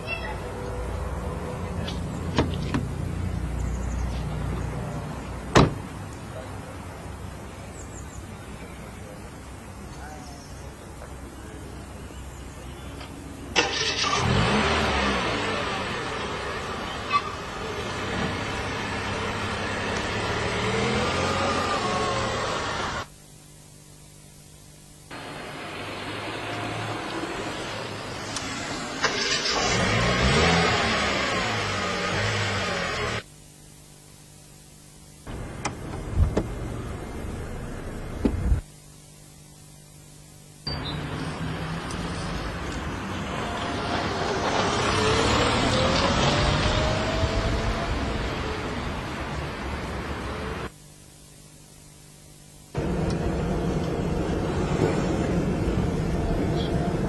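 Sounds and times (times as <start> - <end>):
car engine revving: 13.6 - 23.1, 25.2 - 33.2, 41.3 - 50.7.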